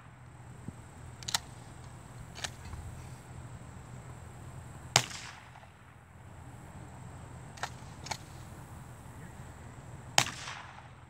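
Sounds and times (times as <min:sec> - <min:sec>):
shotgun shot with echo: 0:04.9 - 0:05.7, 0:10.2 - 0:11.0.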